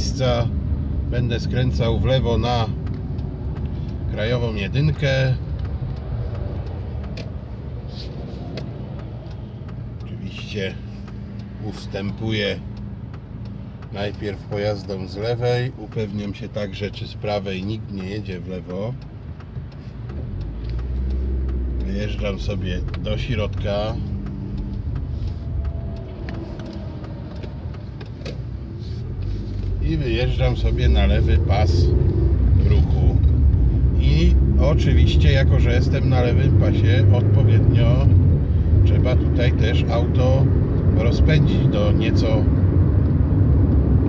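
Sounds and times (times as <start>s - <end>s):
road traffic rumble: 0.0s - 44.0s
heavy truck passing: 22.5s - 32.6s.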